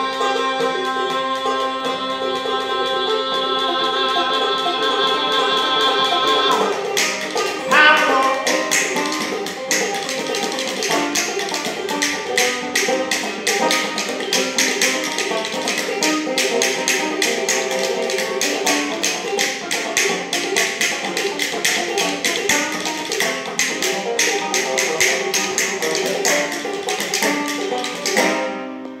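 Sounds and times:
banjo played fast: 0:00.0 - 0:29.0
rapid hand claps: 0:06.5 - 0:28.4.

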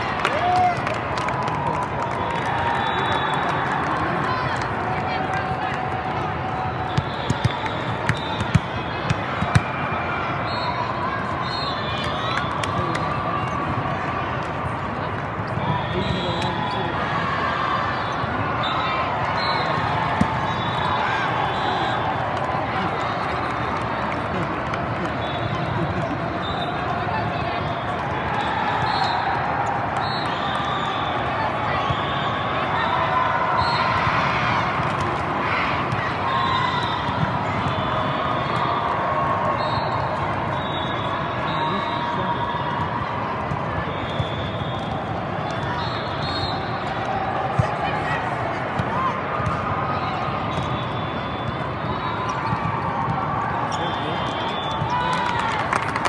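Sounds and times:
many voices talking and calling: 0:01.2 - 0:55.6.

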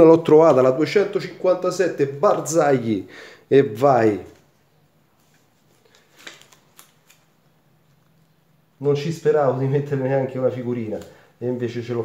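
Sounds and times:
paper rustles and clicks: 0:05.2 - 0:07.3.

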